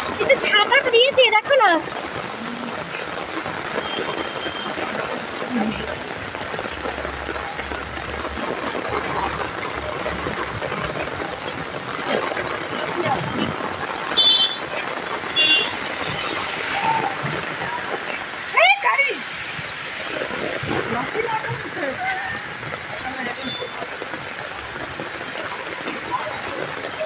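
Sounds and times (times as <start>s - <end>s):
faint voices: 0.0s - 27.0s
rain on umbrellas and pavement: 0.0s - 27.0s.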